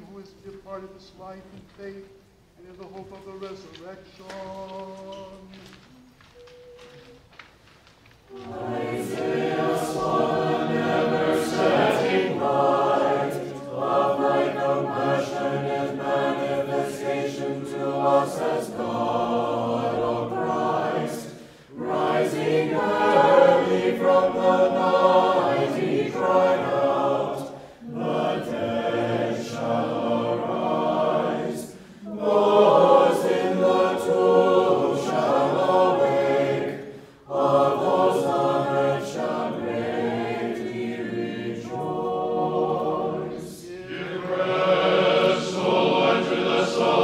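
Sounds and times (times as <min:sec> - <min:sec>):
choir singing a cappella chant: 0:08.3 - 0:47.0.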